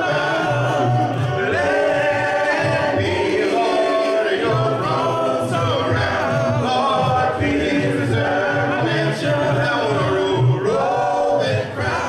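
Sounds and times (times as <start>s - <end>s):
men singing in harmony: 0.0s - 12.0s.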